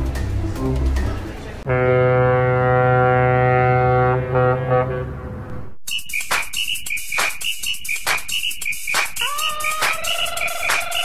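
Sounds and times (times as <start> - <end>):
long steady horn note: 1.7 - 5.5.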